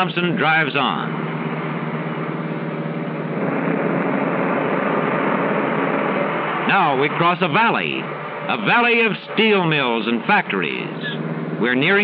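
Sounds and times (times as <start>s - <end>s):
coach engine droning: 0.0s - 12.0s
road noise: 0.0s - 12.0s
second engine drone: 0.0s - 12.0s.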